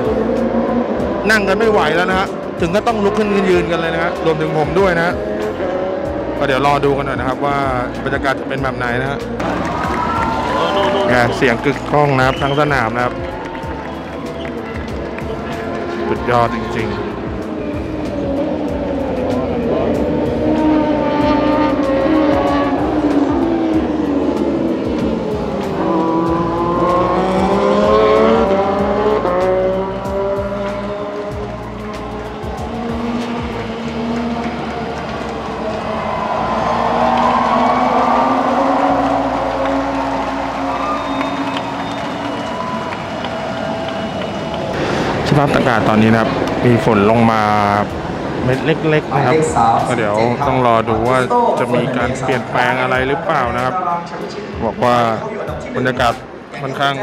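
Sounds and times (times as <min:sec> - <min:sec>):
racing motorcycle engines: 0:00.0 - 0:57.0.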